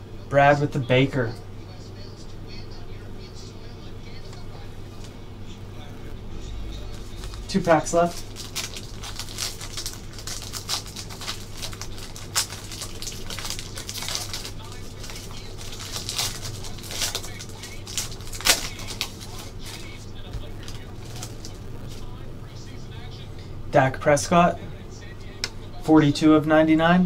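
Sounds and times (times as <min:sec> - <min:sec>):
steady low hum: 0:00.0 - 0:27.0
wrapper crinkling and tearing: 0:06.8 - 0:22.1.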